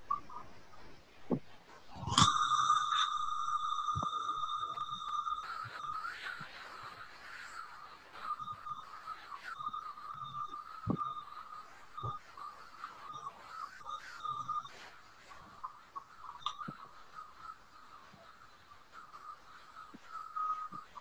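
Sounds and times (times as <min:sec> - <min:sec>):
faint clicks: 0:00.1 - 0:21.0
high-pitched electronic tone: 0:02.0 - 0:15.8.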